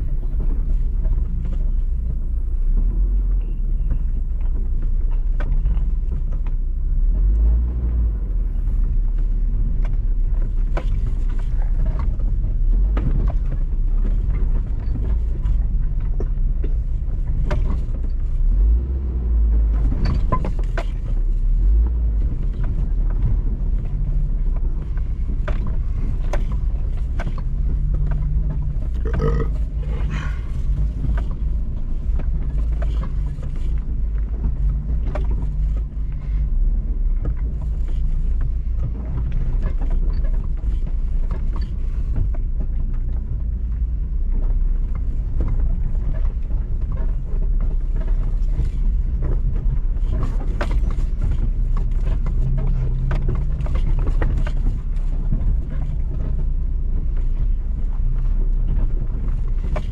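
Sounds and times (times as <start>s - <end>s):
vehicle body rattling: 0.0s - 59.9s
vehicle engine low drone: 0.0s - 59.9s.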